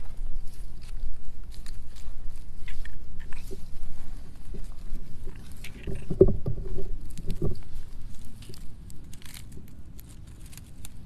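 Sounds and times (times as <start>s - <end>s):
light clicks and rustles: 0.0s - 11.0s
wind rumble on microphone: 0.0s - 11.0s.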